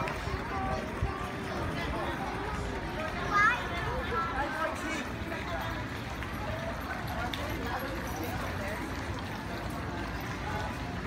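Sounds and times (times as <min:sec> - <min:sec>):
outdoor background noise: 0:00.0 - 0:11.0
people talking: 0:00.0 - 0:11.0.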